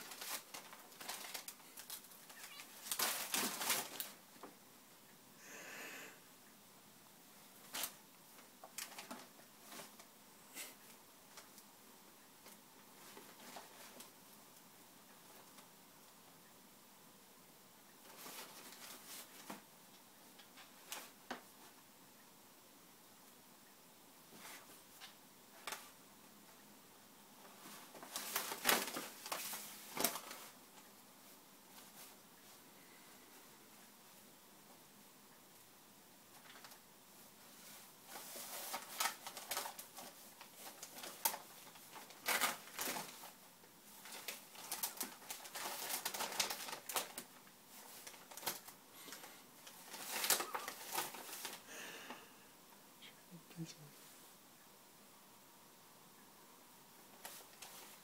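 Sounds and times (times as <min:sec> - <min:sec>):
paper gift bag crinkling: 0:00.0 - 0:04.2, 0:27.9 - 0:30.6, 0:38.1 - 0:51.7.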